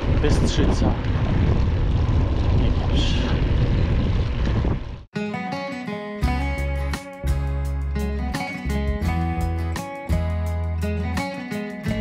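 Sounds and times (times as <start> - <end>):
wind rushing over microphone: 0.0 - 5.1
guitar music: 5.1 - 12.0.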